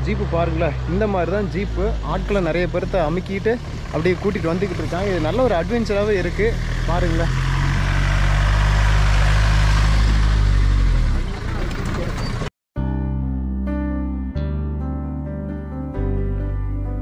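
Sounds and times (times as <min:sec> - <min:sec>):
jeep engine driving past: 0:00.0 - 0:12.5.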